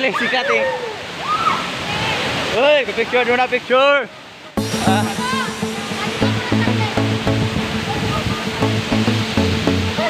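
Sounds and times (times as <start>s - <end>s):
waterfall and river rushing: 0.0s - 10.0s.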